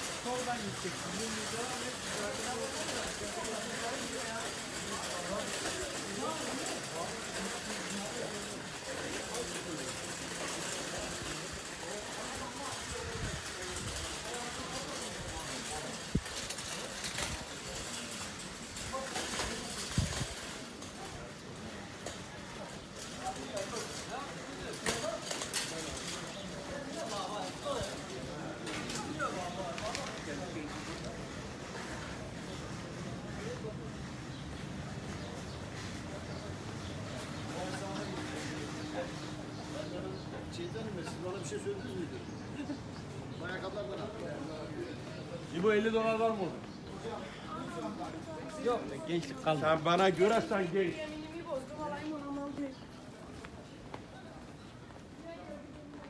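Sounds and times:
murmur of passers-by voices: 0.0s - 56.0s.

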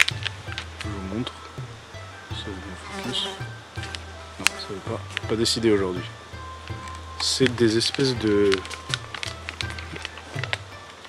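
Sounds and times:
insect buzzing: 0.0s - 11.0s
soft background music: 0.0s - 11.0s.

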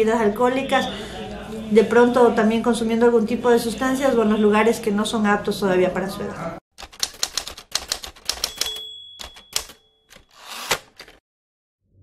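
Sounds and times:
typewriter carriage return rush: 6.8s - 11.2s
typewriter key clacks: 6.8s - 11.2s
typewriter bell ring: 7.8s - 10.9s.

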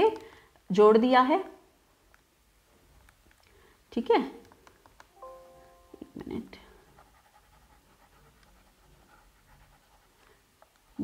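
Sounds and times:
stylus scratching and tapping tablet: 4.4s - 5.2s, 6.2s - 11.0s.

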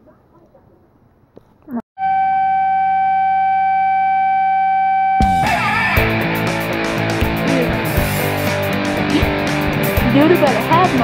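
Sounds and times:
rising swoop: 2.9s - 9.9s.

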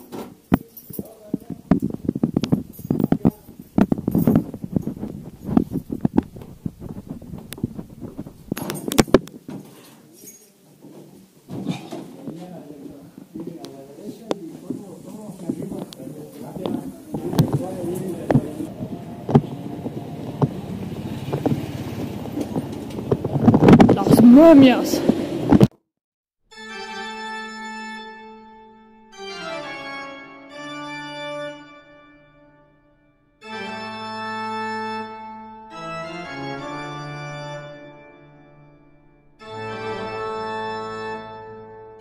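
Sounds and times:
footsteps on tiled floor: 0.0s - 24.3s
low street rumble: 1.1s - 9.5s, 11.2s - 25.7s
wind on microphone: 1.4s - 9.3s, 16.6s - 25.7s.

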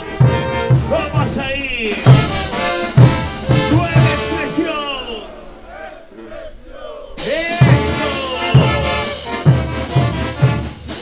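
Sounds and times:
brass band playing: 0.0s - 11.0s
bass drum beat with cymbals: 2.0s - 4.4s, 7.2s - 11.0s.

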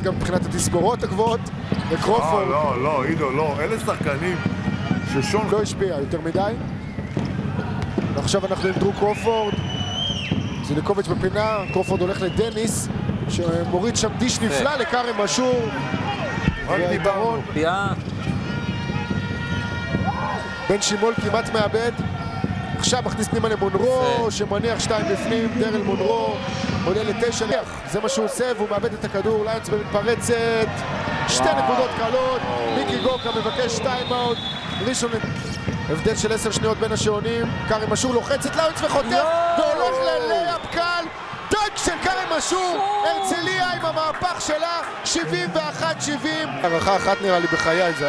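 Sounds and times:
crowd noise: 0.0s - 48.0s.

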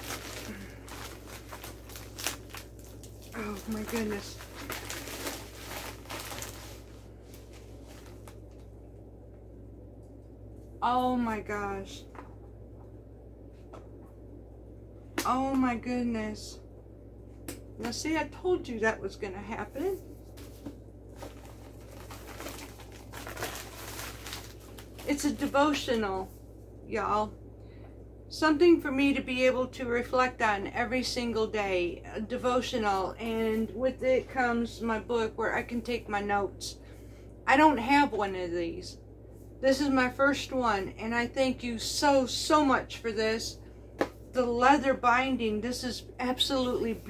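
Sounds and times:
paper and plastic wrapping rustling: 0.0s - 8.7s, 20.3s - 25.6s.

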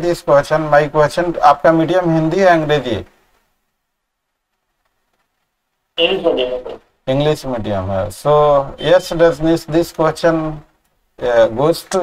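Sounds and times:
faint steady call audio hiss: 0.0s - 12.0s.

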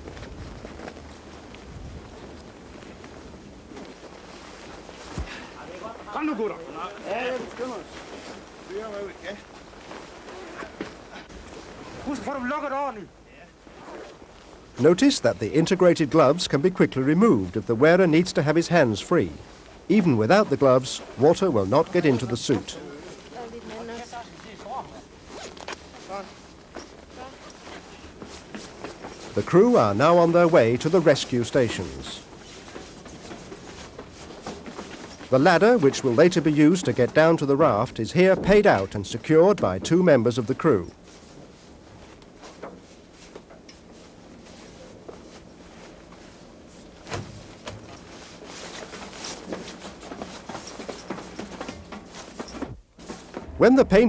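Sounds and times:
suit fabric rustling: 0.0s - 54.0s
zipper rasps: 10.1s - 11.2s, 13.6s - 14.4s, 25.2s - 26.2s.

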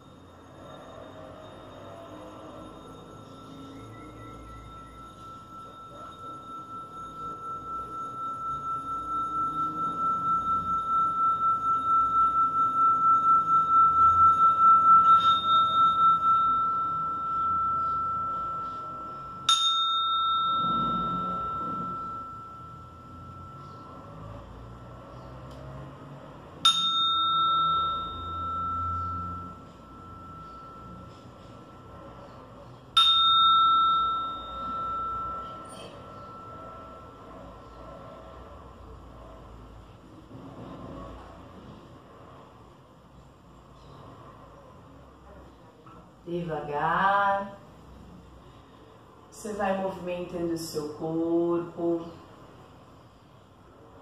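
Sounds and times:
singing bowl struck: 0.0s - 25.3s, 26.6s - 37.9s
singing bowl rim ringing: 0.0s - 42.2s.

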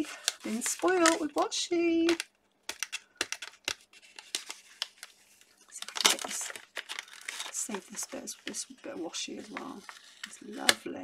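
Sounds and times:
paper wrapping crinkling: 0.0s - 11.0s.

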